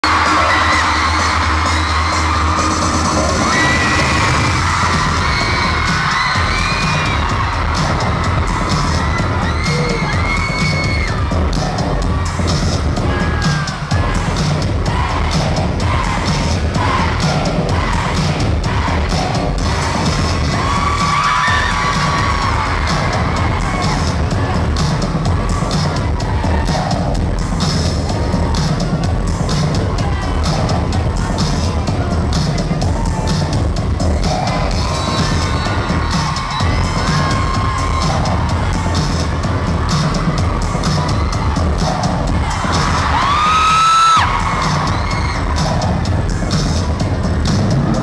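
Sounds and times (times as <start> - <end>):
crowd screaming and cheering: 0.0 - 48.0
loud dance music: 0.0 - 48.0.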